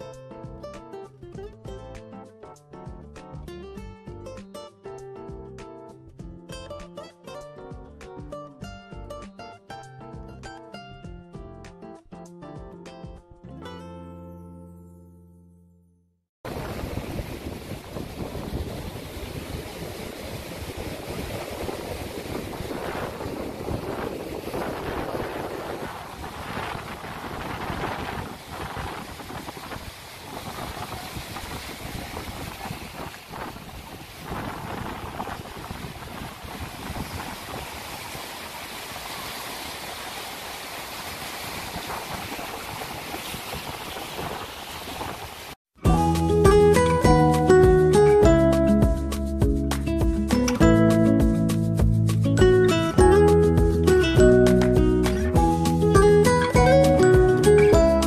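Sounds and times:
wind buffeting microphone: 16.5 - 38.9, 41.1 - 45.6
ocean surf breaking on rocks: 16.5 - 45.6.

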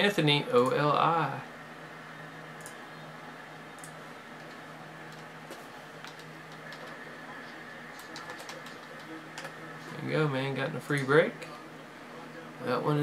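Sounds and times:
low electrical hum: 0.0 - 13.0
computer keyboard clicks: 6.0 - 7.0, 8.0 - 9.5.

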